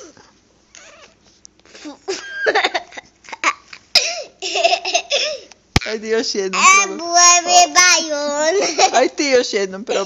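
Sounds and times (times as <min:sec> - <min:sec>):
child giggling: 0:01.7 - 0:05.5, 0:08.4 - 0:09.2.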